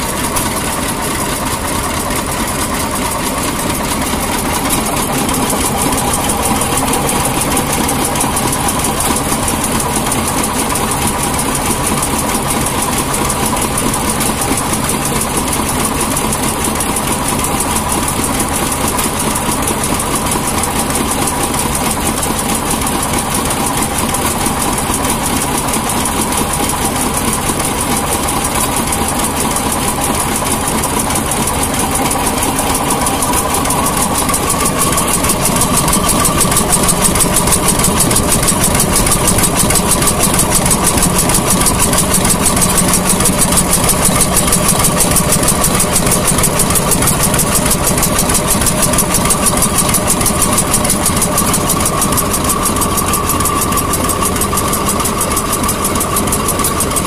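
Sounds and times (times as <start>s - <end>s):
stationary engine running: 0.0s - 57.0s.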